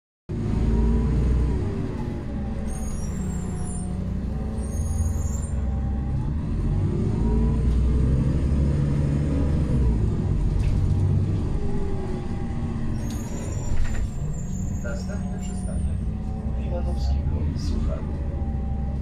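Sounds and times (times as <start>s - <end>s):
bus engine: 0.3s - 19.0s
high whistling tones: 2.7s - 5.6s.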